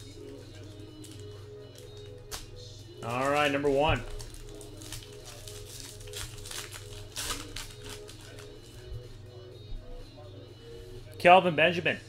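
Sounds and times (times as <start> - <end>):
quiet background music: 0.0 - 12.0
cards rustling: 0.1 - 8.8
card pack wrapper crinkling: 3.0 - 8.5.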